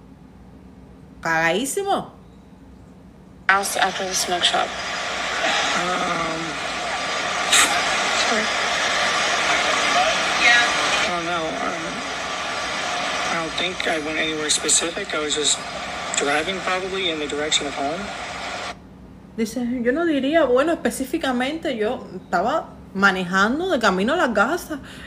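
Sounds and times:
indistinct voices on playback: 0:03.5 - 0:18.8
steady rushing noise: 0:03.7 - 0:18.8.

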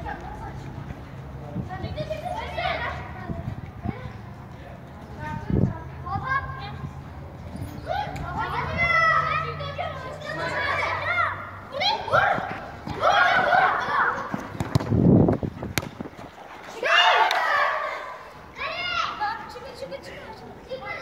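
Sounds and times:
children shouting: 0:07.8 - 0:14.6, 0:16.7 - 0:19.5.

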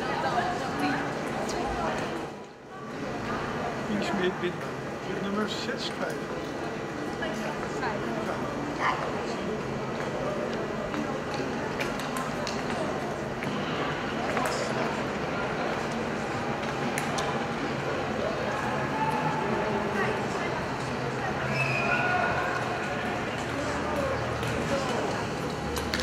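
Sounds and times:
chatter of many voices: 0:00.0 - 0:26.0.

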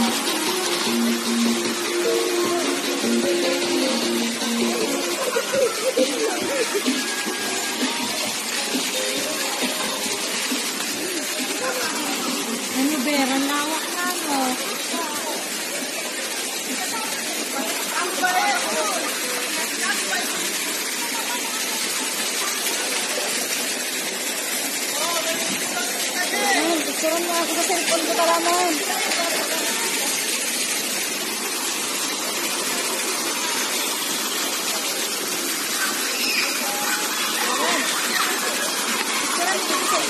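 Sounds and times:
people talking: 0:00.0 - 0:30.7, 0:32.7 - 0:40.0
water pouring over rocks: 0:00.0 - 0:40.0.

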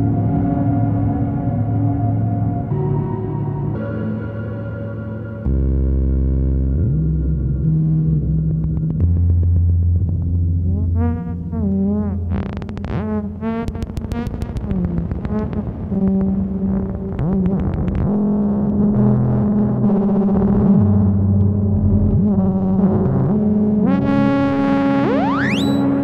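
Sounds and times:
synthesizer tones over drones: 0:00.0 - 0:06.2, 0:13.6 - 0:26.0
rapid clicking pulses: 0:12.4 - 0:18.2
fast rising whine: 0:25.0 - 0:26.0.

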